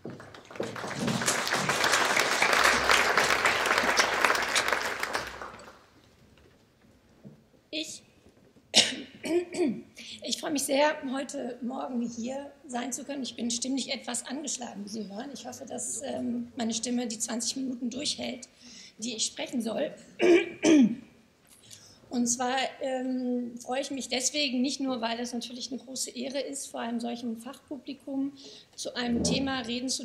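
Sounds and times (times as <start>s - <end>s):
woman coughing into microphone: 8.7s - 9.9s, 20.2s - 21.1s
woman clearing her throat: 8.8s - 9.9s, 20.2s - 21.1s.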